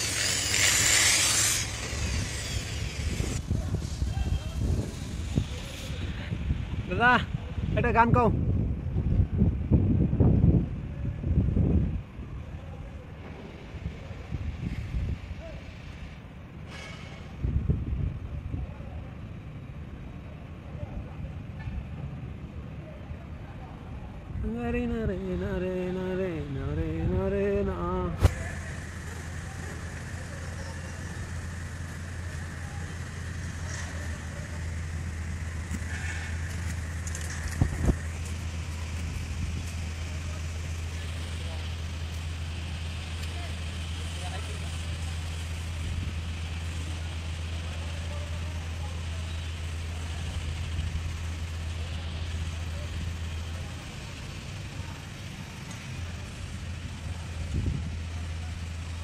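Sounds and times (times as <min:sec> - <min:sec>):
low mechanical drone: 0:00.0 - 0:59.0.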